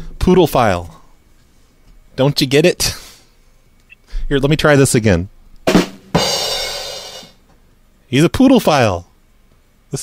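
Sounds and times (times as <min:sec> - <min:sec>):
cymbal crash: 0:05.7 - 0:07.4.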